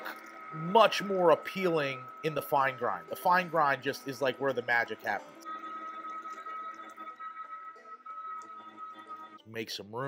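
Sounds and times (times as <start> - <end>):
electric meat grinder whining: 0.0 - 9.4
background music: 0.0 - 10.0.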